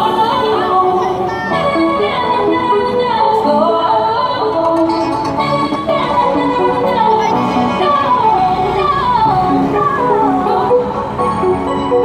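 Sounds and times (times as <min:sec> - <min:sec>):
pop song with singing through amplifier: 0:00.0 - 0:12.0.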